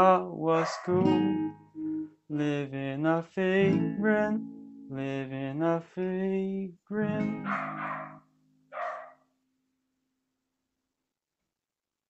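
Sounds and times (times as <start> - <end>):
acoustic guitar note ringing: 7.1 - 9.8.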